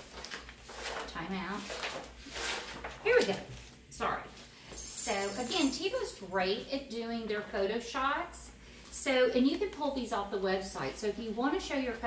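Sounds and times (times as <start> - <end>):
heavy pages turning: 0.0 - 3.8.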